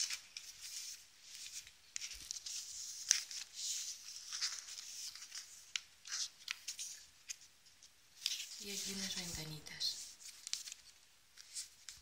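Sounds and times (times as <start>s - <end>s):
paper pages rustling: 0.0s - 12.0s.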